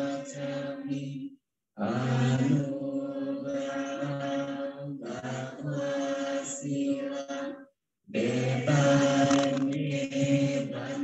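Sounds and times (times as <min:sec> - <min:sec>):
group chanting: 0:00.0 - 0:11.0.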